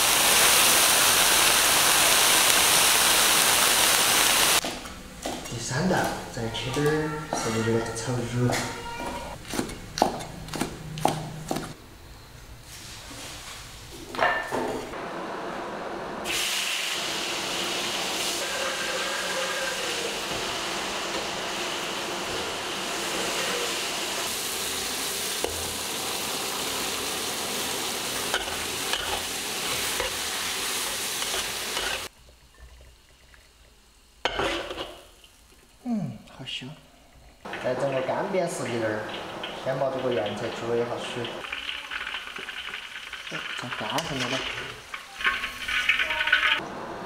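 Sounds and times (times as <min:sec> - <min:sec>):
stir-frying sizzle in a wok: 0:00.0 - 0:07.7, 0:15.4 - 0:32.1, 0:37.4 - 0:47.0
spatula stirring in a wok: 0:27.9 - 0:32.1.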